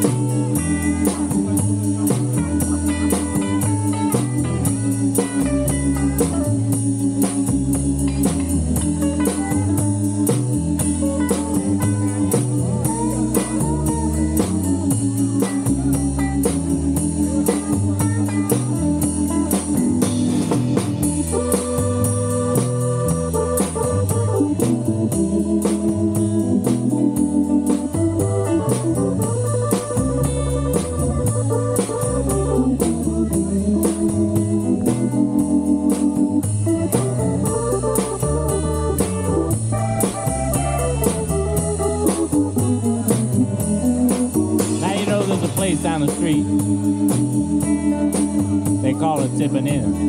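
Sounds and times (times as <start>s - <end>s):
bass line: 0.0s - 50.0s
electric guitar: 0.0s - 50.0s
electronic organ keyboard: 0.0s - 50.0s
steady drum beat: 0.0s - 50.0s.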